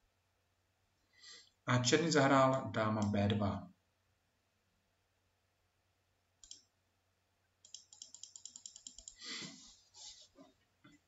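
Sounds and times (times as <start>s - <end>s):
computer mouse clicks: 6.4s - 6.7s, 7.6s - 9.3s.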